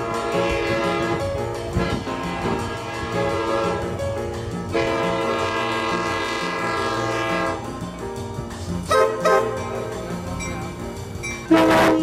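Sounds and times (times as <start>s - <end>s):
train air horn chord: 0.0s - 4.0s, 4.7s - 7.7s, 8.9s - 9.8s, 11.4s - 12.0s.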